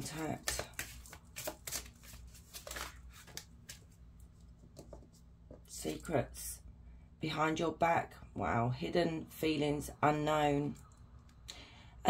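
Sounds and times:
cards being shuffled: 0.0s - 5.2s.

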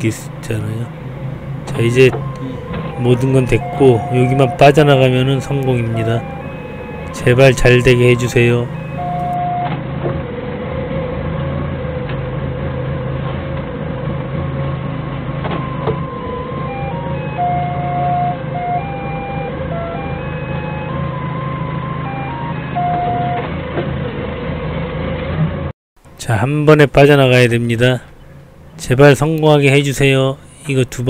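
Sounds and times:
forklift engine running: 0.0s - 25.7s
reversing alarm electronic tune: 1.1s - 9.9s, 15.6s - 23.6s.

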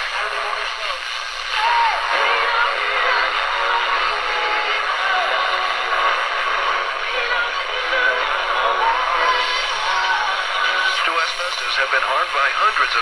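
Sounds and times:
voice on radio: 0.0s - 1.2s, 9.4s - 13.0s
music on radio: 0.0s - 13.0s
radio hiss: 0.0s - 13.0s.

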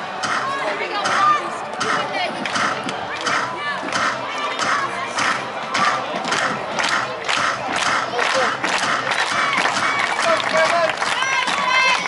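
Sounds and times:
group chanting a cheer: 0.0s - 12.0s.

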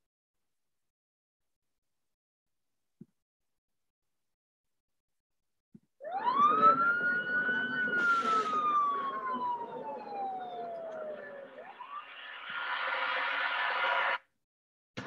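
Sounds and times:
police siren wailing: 6.0s - 13.4s.

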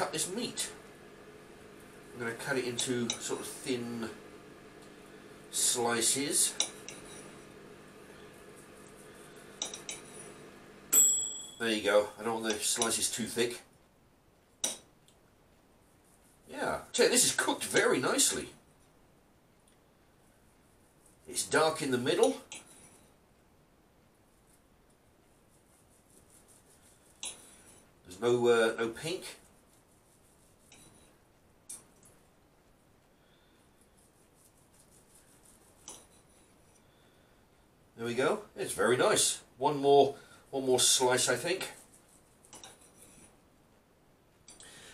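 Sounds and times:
knife and fork on plate: 6.6s - 7.4s, 9.6s - 10.2s, 42.5s - 43.2s.

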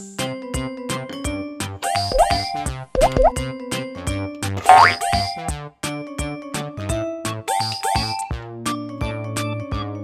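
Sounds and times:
cheerful children's music: 0.0s - 10.0s
cartoon boing effects: 3.0s - 3.4s, 4.6s - 5.2s.

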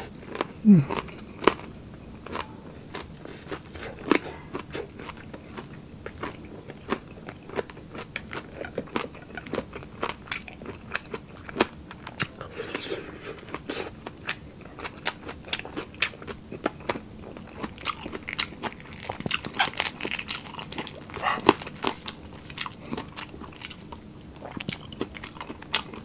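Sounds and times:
crunchy chewing: 0.0s - 26.0s.

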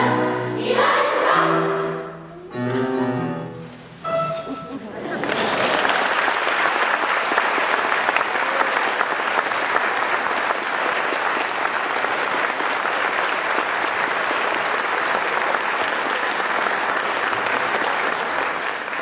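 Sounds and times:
audience applauding: 5.0s - 19.0s.

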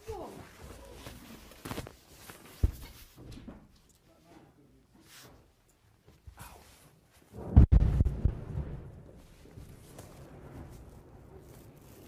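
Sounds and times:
explosion boom with low rumble: 7.4s - 11.2s.

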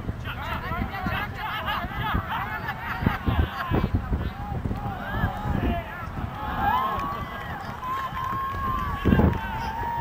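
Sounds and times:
wind rumble on microphone: 0.0s - 10.0s
people shouting: 4.2s - 10.0s.

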